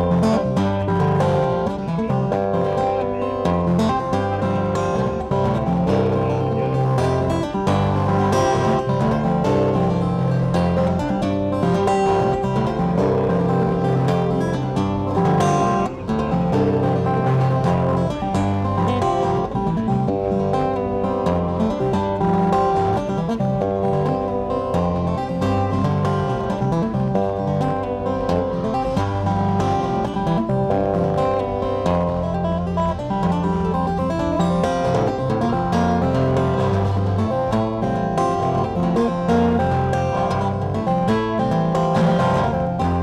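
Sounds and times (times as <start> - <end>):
fingerstyle acoustic guitar: 0.0 - 43.0.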